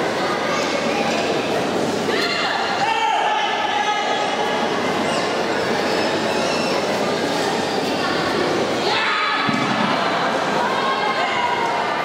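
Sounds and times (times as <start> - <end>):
crowd hubbub in a hall: 0.0 - 12.0.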